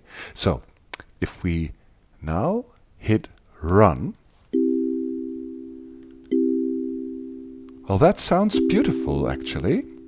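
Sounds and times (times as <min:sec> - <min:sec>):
kalimba chord: 0:04.6 - 0:10.0.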